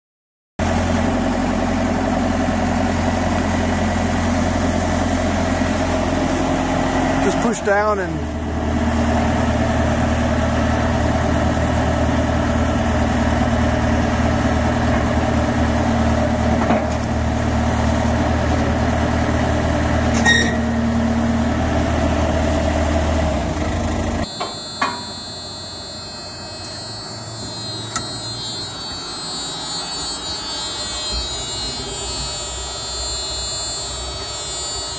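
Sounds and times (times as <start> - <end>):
diesel engine idling: 0.6 - 34.9
high-pitched electrical whine: 0.6 - 34.9.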